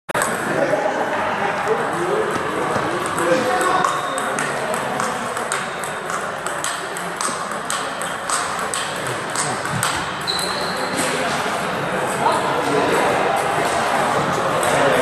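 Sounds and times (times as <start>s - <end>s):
murmur of voices: 0.1s - 15.0s
table tennis balls ticking: 2.4s - 11.1s
brief high squeak: 10.2s - 11.2s.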